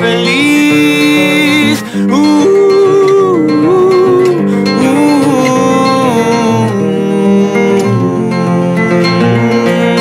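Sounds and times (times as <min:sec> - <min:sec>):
acoustic guitar: 0:00.0 - 0:10.0
man singing: 0:00.0 - 0:10.0.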